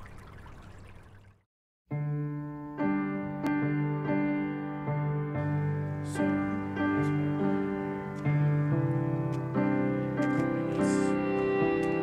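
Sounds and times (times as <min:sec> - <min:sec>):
piano music: 0:01.9 - 0:12.0.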